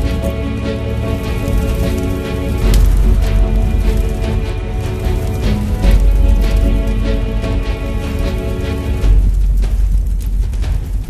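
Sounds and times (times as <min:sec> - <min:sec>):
dramatic soundtrack music: 0:00.0 - 0:11.0
short crackles: 0:01.0 - 0:11.0
deep low hit: 0:02.5 - 0:11.0.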